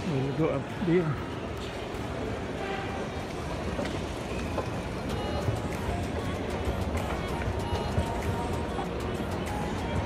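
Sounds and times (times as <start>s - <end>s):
background music: 0.0s - 10.0s
chatter of people: 0.0s - 10.0s.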